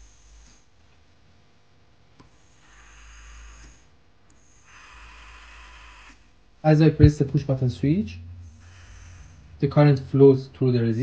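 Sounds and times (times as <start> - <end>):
small motor propeller whirring: 2.4 - 6.3, 8.4 - 9.6.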